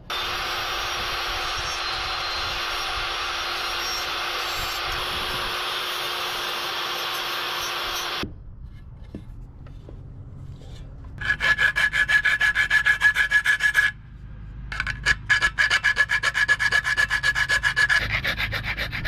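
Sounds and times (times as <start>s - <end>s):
rotary cutting tool: 0.0s - 8.2s, 14.7s - 19.0s
hand file on metal: 11.2s - 14.0s, 14.8s - 19.0s.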